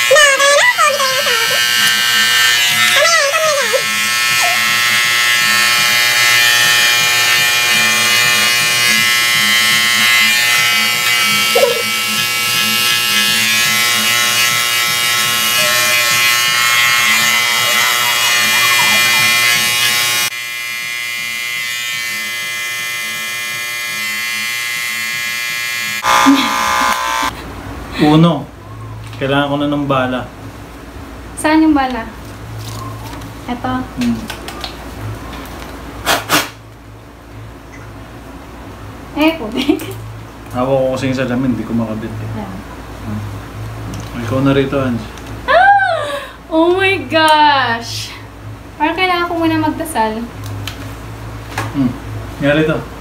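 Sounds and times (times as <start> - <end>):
electric hair clippers buzzing: 0.0 - 27.4.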